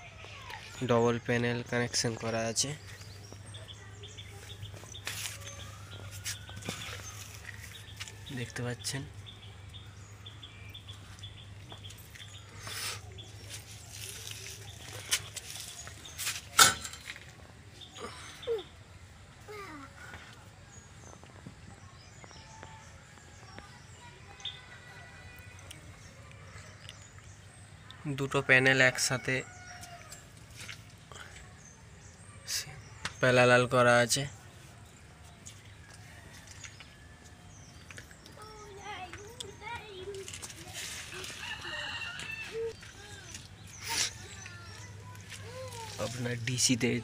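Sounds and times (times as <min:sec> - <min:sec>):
bird chirping: 0:00.0 - 0:18.8.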